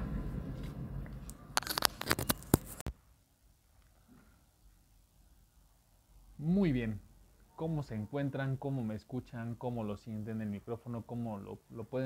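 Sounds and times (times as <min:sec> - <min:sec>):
microphone rustling: 0:00.5 - 0:03.0.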